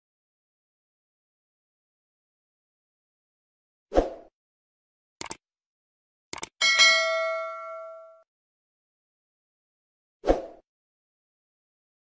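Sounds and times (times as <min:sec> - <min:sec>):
notification bell ding: 0:06.6 - 0:08.2.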